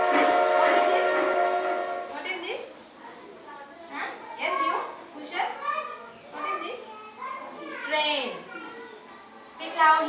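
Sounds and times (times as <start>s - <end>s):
children chattering: 2.4s - 10.0s.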